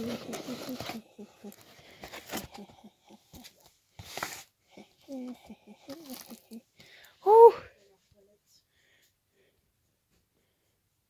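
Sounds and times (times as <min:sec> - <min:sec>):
packaging rustling: 0:00.0 - 0:02.7.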